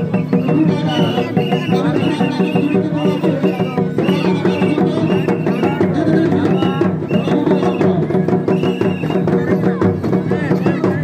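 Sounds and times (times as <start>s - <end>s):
drums playing fast rhythm: 0.0s - 11.0s.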